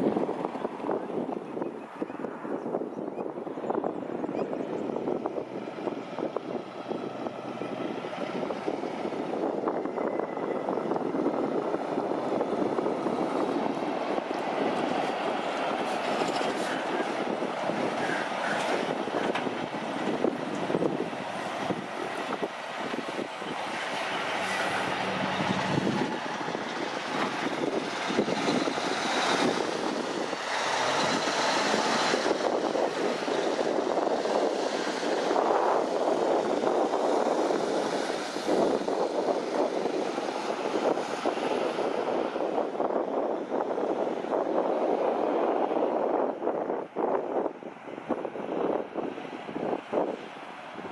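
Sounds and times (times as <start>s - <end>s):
diesel trucks driving past: 3.4s - 50.9s
trailers rattling: 4.3s - 40.5s.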